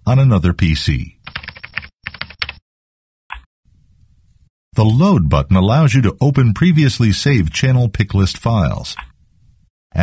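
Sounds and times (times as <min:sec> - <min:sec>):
computer keyboard typing: 0:01.2 - 0:02.6.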